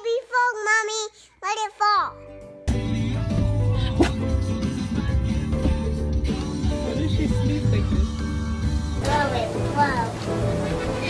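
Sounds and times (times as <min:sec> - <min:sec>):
little girl sing-song speaking: 0:00.0 - 0:02.2.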